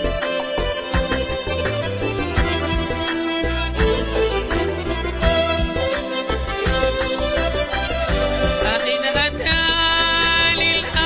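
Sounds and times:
bass line: 0:00.0 - 0:11.0
held melody: 0:00.0 - 0:11.0
percussion strikes: 0:00.0 - 0:11.0.

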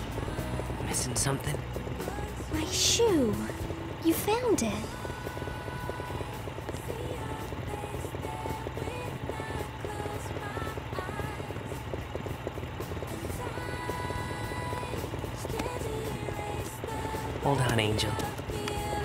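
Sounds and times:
background music: 0:00.0 - 0:19.0
motorcycle engine idling: 0:00.0 - 0:19.0.

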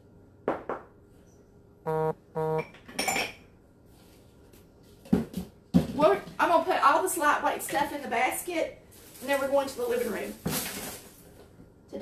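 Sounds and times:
short tones: 0:01.9 - 0:02.6.

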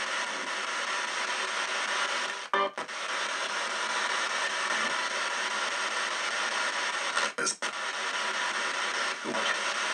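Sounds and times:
radio static hiss: 0:00.0 - 0:09.9.

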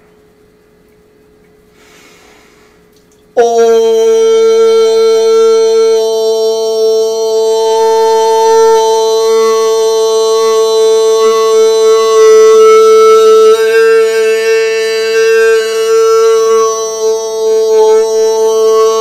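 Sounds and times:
man toning a long note: 0:03.4 - 0:19.0.

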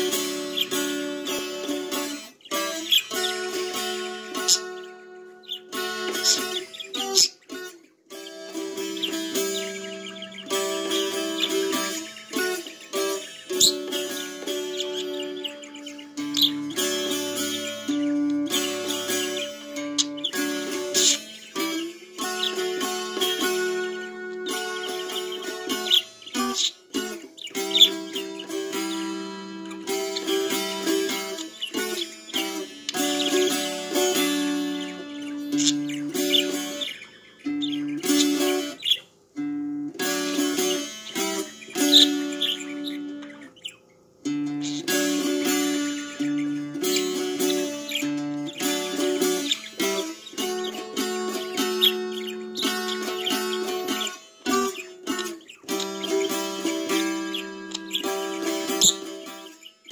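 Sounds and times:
acoustic guitar chord ringing: 0:00.0 - 0:59.9
budgerigar chirping: 0:00.0 - 0:59.9
plucked-string music: 0:00.0 - 0:59.9.

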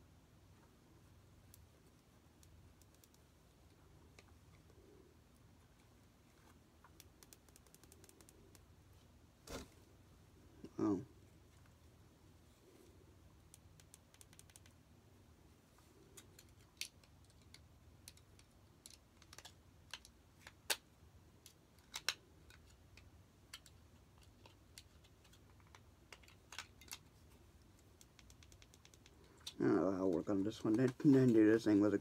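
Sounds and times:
clicks of small plastic parts: 0:16.1 - 0:20.8, 0:21.4 - 0:27.1.

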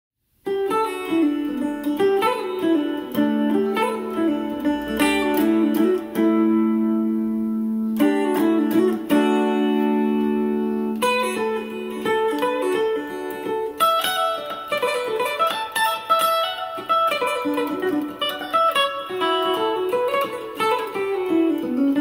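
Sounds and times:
electric guitar melody: 0:00.4 - 0:22.0.

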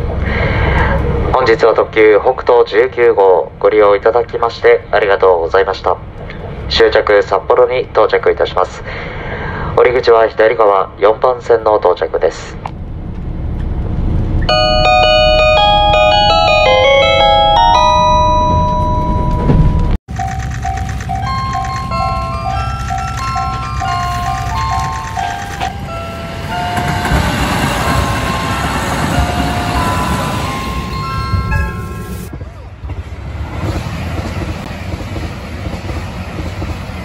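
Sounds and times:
low rumble of running train: 0:00.0 - 0:37.0
bell-like chime over loudspeaker: 0:14.5 - 0:19.9, 0:21.2 - 0:32.3
bell-like melody: 0:14.5 - 0:32.3.

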